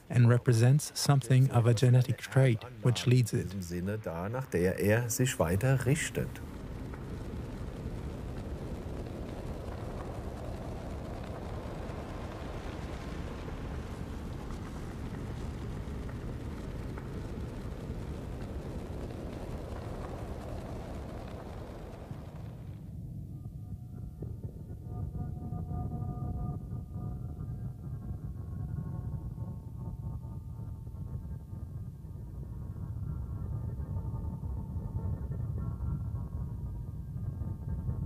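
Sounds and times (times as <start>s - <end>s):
rumbling hissing wash: 0.0s - 22.9s
low drone with soft tones: 0.0s - 38.0s.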